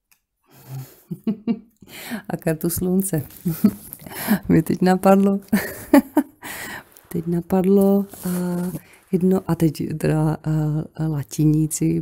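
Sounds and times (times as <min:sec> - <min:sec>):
woman breathing in: 0:01.8 - 0:02.3, 0:04.0 - 0:04.4, 0:06.4 - 0:07.0
woman speaking: 0:02.1 - 0:06.2, 0:07.0 - 0:12.0.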